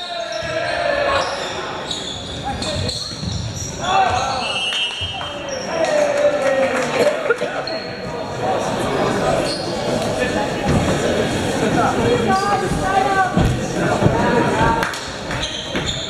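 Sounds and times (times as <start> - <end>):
people shouting and calling out: 11.6 - 14.9.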